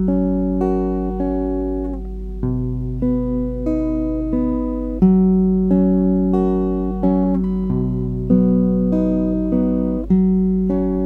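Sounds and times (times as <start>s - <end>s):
fingerpicked acoustic guitar: 0.0s - 11.0s.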